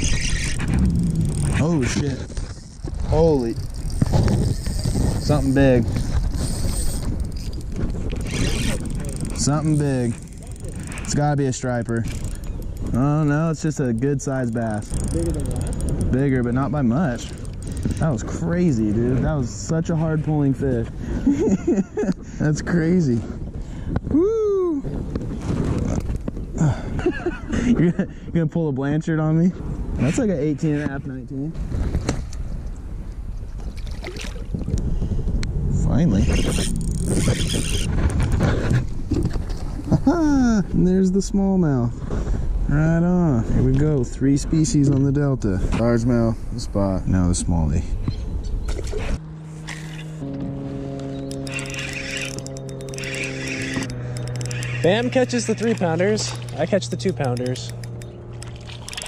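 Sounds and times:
low rumbling noise: 0.0 - 21.4
sustained synth chords: 49.2 - 58.9.

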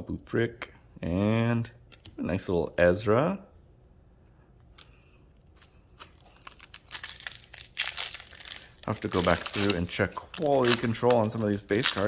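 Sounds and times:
foil wrapper crinkling and tearing: 5.5 - 12.0.

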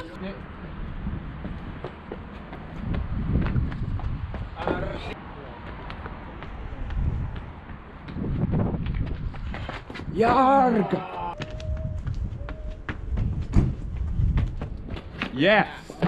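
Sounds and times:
footsteps on brick paving: 1.4 - 4.7, 5.6 - 15.4
person shouting: 10.2 - 12.0
body thumping against wall: 13.2 - 15.0.

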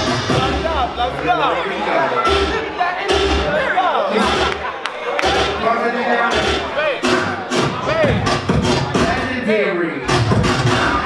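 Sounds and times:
ballroom dance music with heavy bass: 0.0 - 11.0.

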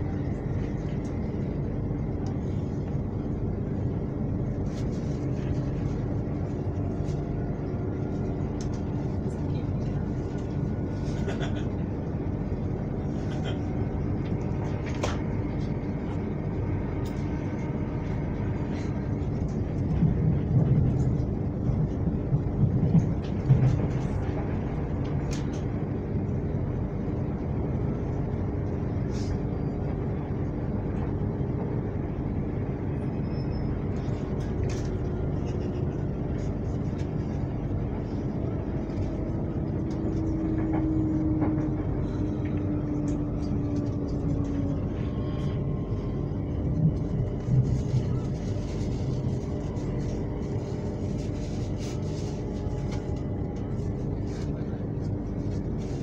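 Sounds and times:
train motor hum: 0.0 - 56.0
train wheels rumbling on rail: 0.0 - 56.0.

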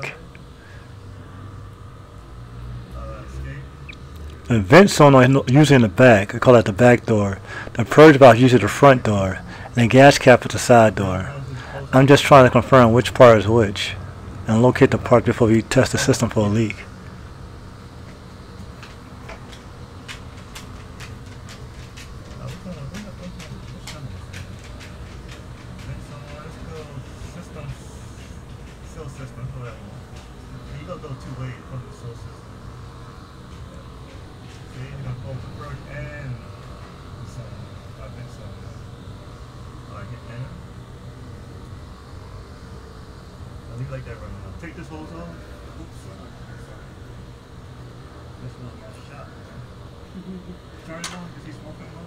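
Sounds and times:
low hum: 0.0 - 52.0
person speaking: 4.4 - 16.9.

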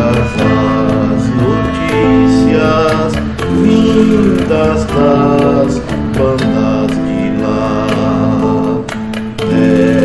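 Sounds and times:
electric guitar: 0.0 - 10.0
percussive hits: 0.0 - 10.0
sustained notes: 0.0 - 10.0.

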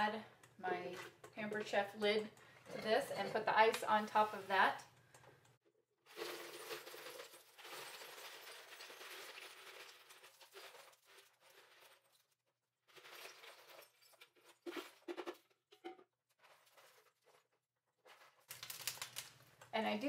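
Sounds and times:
ice cubes clicking and knocking: 6.1 - 12.1, 18.1 - 19.5
ice cubes rattling on plastic: 6.1 - 12.2, 18.1 - 19.4.

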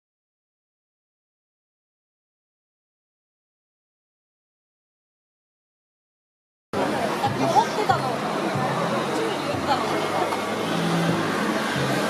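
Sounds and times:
crowd chatter: 6.8 - 12.0.

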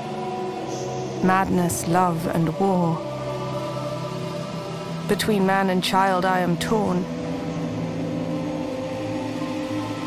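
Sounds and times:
low ambient drone: 0.0 - 10.0.

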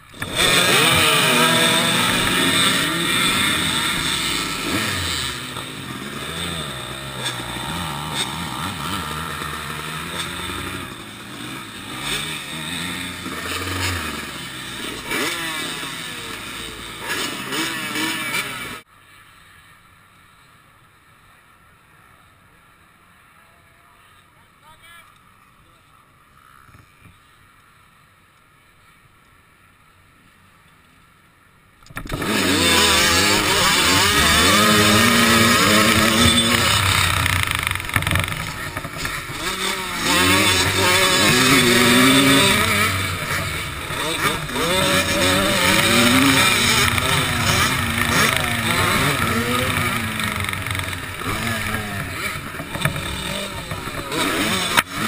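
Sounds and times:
dirt bike engines revving: 0.0 - 18.8, 31.9 - 55.0.

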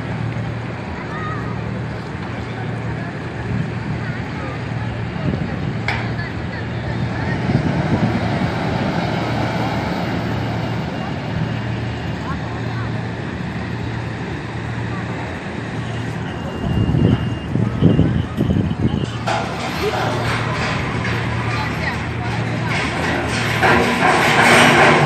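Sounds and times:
people talking: 0.0 - 25.0.

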